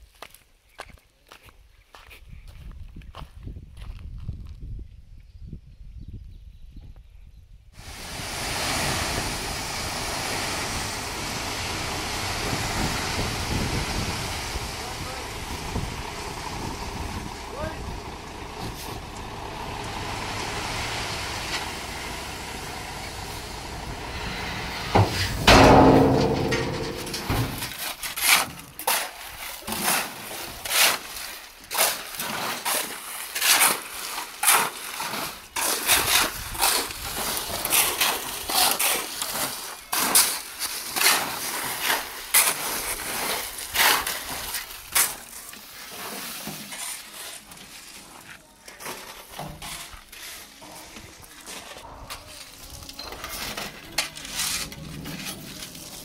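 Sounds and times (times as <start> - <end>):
truck engine: 7.8 - 27.8
gravel pouring: 7.8 - 56.0
shovels scraping and striking: 24.9 - 37.0.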